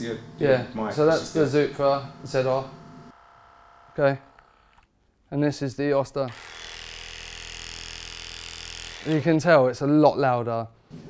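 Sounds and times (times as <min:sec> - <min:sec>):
hair clipper running: 0:00.0 - 0:04.9, 0:06.3 - 0:09.4.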